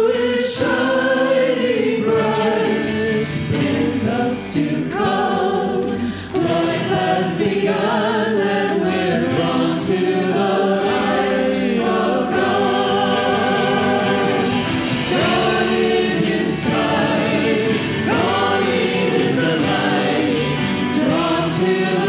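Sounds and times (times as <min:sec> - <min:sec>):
choir and congregation singing hymn: 0:00.0 - 0:22.0.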